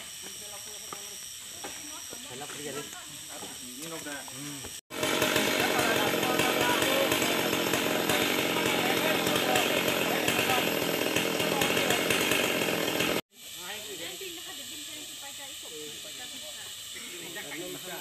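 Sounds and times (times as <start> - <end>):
chainsaw running: 0.0 - 18.0
people's voices: 5.4 - 10.8.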